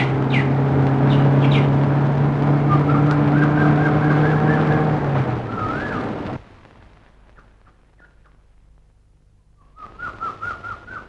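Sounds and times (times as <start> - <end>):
birds chirping: 0.0 - 6.4, 7.3 - 8.5
car engine running: 0.0 - 6.4.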